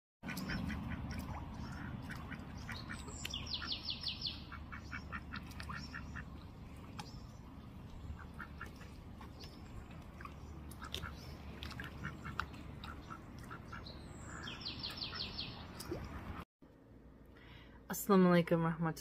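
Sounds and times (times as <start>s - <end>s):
low steady rumble: 0.3s - 14.8s
small bird trill: 2.6s - 5.0s.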